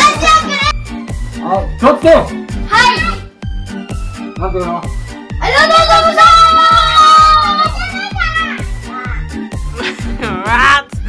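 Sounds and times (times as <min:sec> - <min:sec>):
child shouting: 0:00.0 - 0:00.8, 0:02.7 - 0:03.2, 0:05.4 - 0:09.3
upbeat music with bass beat: 0:00.1 - 0:11.0
children's voices: 0:05.4 - 0:09.3.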